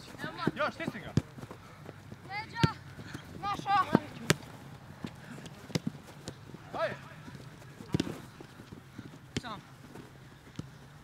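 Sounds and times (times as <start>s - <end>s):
players running on grass: 0.0s - 11.0s.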